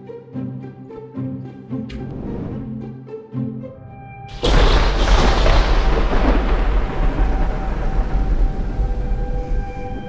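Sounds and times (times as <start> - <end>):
ominous music tones: 4.3 - 10.0
thunder rumble: 4.3 - 10.0.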